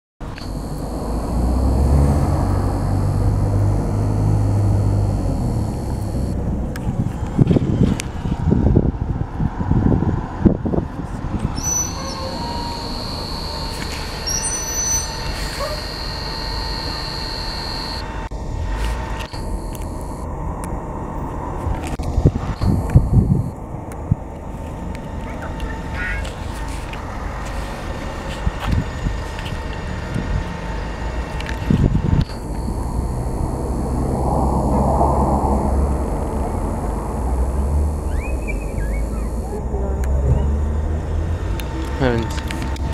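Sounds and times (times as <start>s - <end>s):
steady high tone: 0.2s - 6.4s, 11.5s - 20.3s, 22.4s - 23.7s, 32.3s - 42.9s
bus engine rumble: 0.2s - 19.2s, 20.3s - 42.9s.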